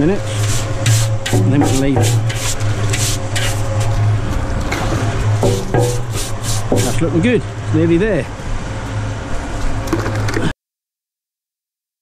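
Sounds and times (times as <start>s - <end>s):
brush scrubbing a drum: 0.0s - 4.0s, 5.4s - 7.3s
cement mixer humming: 0.0s - 8.0s.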